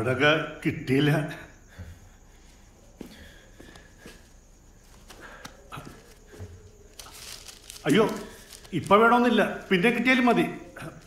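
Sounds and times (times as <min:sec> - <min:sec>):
faint footsteps: 0:01.7 - 0:11.0.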